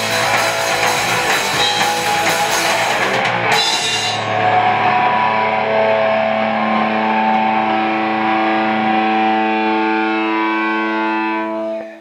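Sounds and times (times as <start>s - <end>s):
electric guitars sustained chord: 0.0s - 12.0s.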